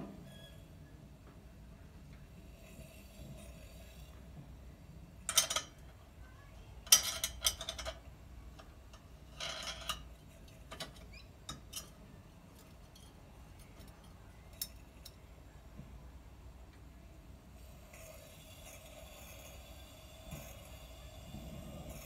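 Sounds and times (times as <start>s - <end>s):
metal clinks and scrapes: 5.3s - 5.8s, 6.8s - 15.2s.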